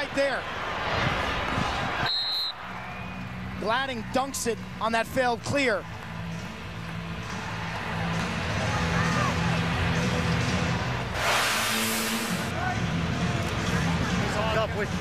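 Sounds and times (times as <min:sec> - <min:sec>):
burst of hiss: 0:11.2 - 0:12.5.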